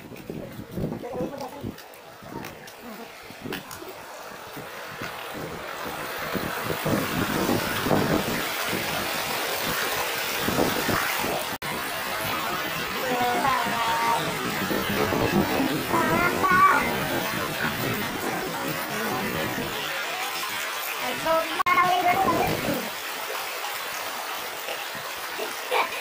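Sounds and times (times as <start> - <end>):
stream rushing over rocks: 0.0 - 26.0
low rumbles: 10.5 - 19.8.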